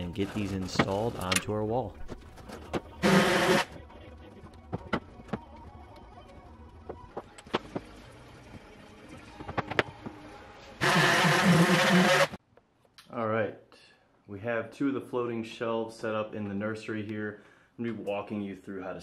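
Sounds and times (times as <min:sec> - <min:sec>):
orbital sander running: 0:10.8 - 0:12.4.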